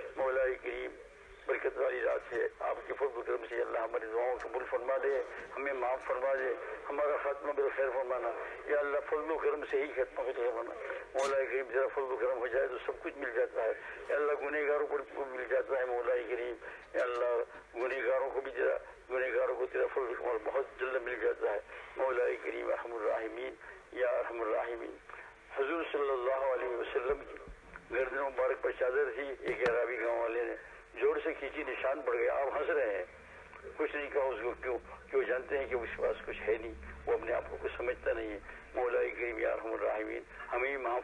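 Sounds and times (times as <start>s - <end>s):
man speaking: 0.0s - 41.0s.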